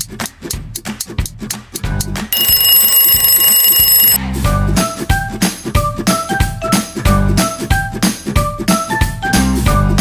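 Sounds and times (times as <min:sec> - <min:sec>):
alarm clock bell ringing: 0:02.3 - 0:04.2.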